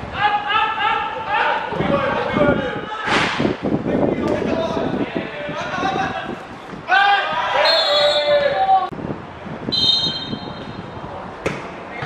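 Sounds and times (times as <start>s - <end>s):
voices shouting: 4.5s - 8.9s
referee's whistle: 7.6s - 8.4s, 9.7s - 10.7s.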